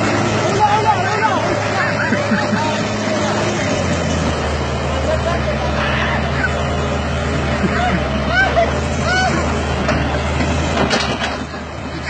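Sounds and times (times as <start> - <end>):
diesel engine running: 0.0 - 12.0
people calling out: 5.4 - 6.8, 7.5 - 9.8.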